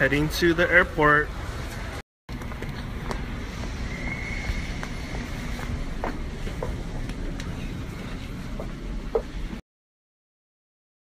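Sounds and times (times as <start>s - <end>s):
train carriage rumble: 1.4s - 9.6s.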